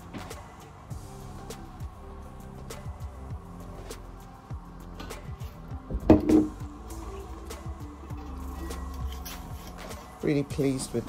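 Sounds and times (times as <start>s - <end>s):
soft background music: 0.0s - 11.0s
glass vases knocking: 6.0s - 6.6s.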